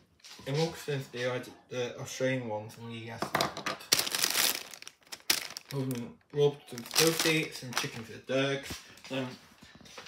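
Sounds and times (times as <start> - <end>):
plastic packaging crinkling: 3.8 - 8.2.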